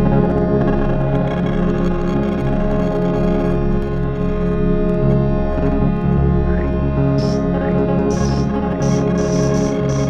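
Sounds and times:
electric guitar drone: 0:00.0 - 0:10.0
keyboard synth: 0:00.0 - 0:10.0
steady low bass: 0:00.0 - 0:10.0.

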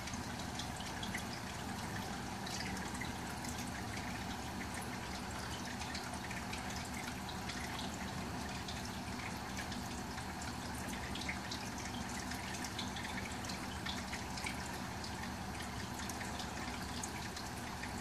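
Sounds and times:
low pump hum: 0:00.0 - 0:18.0
water trickling and dripping: 0:00.0 - 0:18.0.

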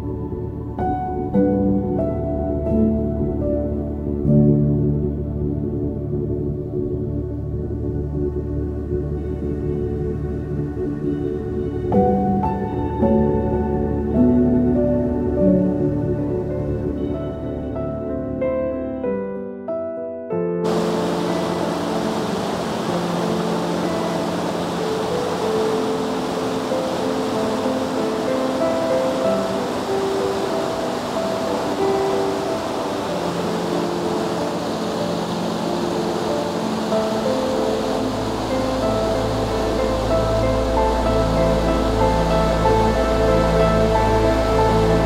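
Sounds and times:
ambient music: 0:00.0 - 0:45.0
river rushing over rocks: 0:20.7 - 0:45.0.

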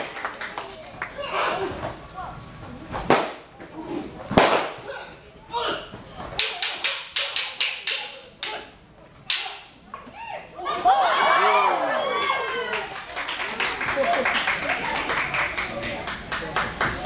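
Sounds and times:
wooden staffs clacking together: 0:06.4 - 0:08.6, 0:09.2 - 0:10.1.

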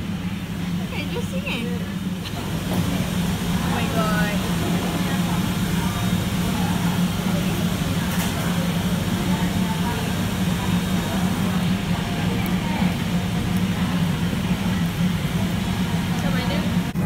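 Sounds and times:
faint chatter of voices: 0:03.7 - 0:17.0.

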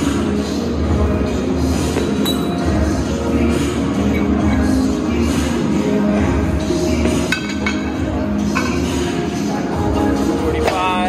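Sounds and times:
loud music with steady beat: 0:00.0 - 0:11.0.

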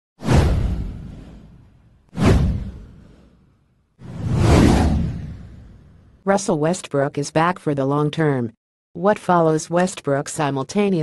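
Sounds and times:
whoosh sound effects: 0:02.2 - 0:06.2.

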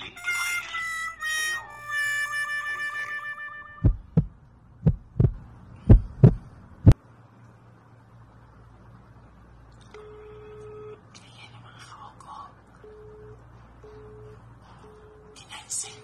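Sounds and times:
sad trombone sound effect: 0:00.2 - 0:03.9
heavy low heartbeat thumps: 0:03.8 - 0:07.0.

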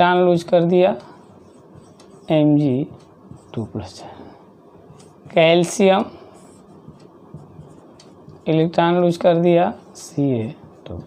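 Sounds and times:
marker scratching on whiteboard: 0:00.1 - 0:04.1, 0:04.8 - 0:11.0.

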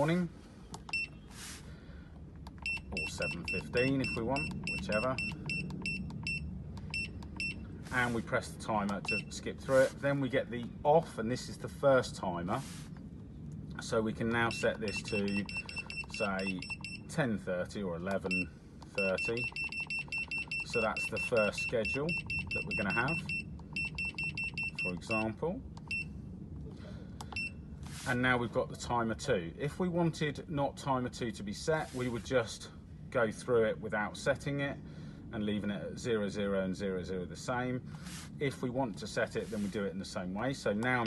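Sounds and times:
low steady hum: 0:00.0 - 0:41.0.

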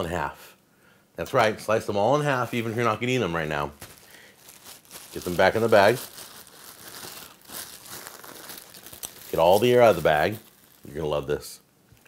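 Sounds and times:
plastic bag crinkling: 0:02.6 - 0:11.6.

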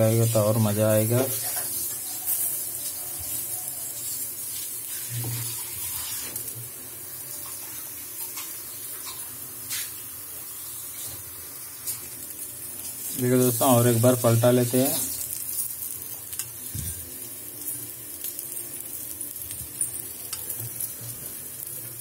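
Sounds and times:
kababs sizzling on a griddle: 0:00.0 - 0:22.0.

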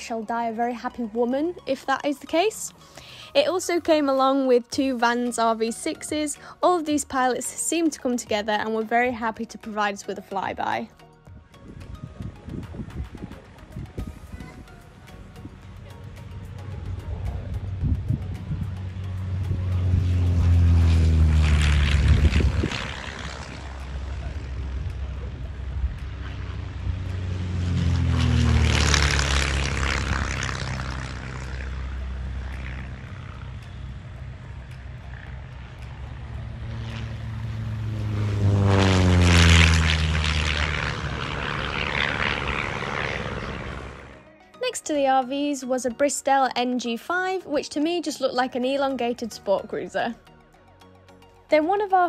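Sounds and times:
propeller aircraft flying past: 0:00.0 - 0:52.0.

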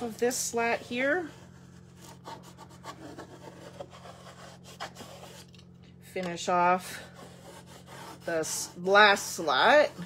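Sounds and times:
scratchy rubbing on wood: 0:00.4 - 0:05.5, 0:07.0 - 0:10.0
sharp scrapes: 0:00.8 - 0:05.6, 0:06.8 - 0:10.0.

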